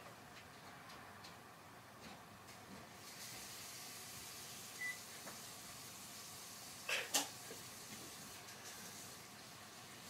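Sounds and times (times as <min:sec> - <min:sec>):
faint hiss: 0:02.8 - 0:10.0.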